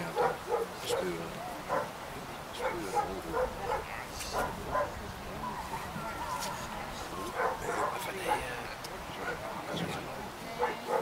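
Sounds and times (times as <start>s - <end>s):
dog yipping and barking: 7.4s - 8.0s.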